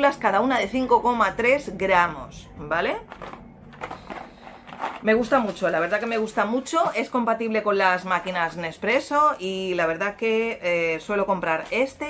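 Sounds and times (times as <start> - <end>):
capsule box crackling and tapping: 3.0 - 7.2.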